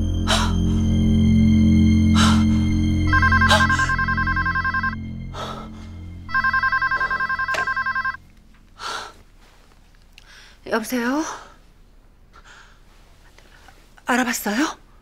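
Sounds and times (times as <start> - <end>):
low dramatic background music: 0.0 - 8.8
telephone ringing: 3.1 - 5.2, 6.3 - 8.2.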